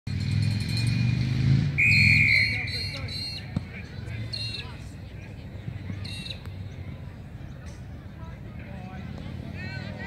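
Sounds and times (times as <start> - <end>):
vehicle engine running: 0.1 - 7.5
shrill referee's whistle blast: 1.8 - 3.4.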